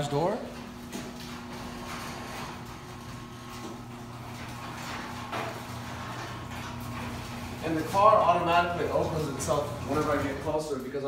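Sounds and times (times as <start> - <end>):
garage door opener humming: 0.0 - 11.0.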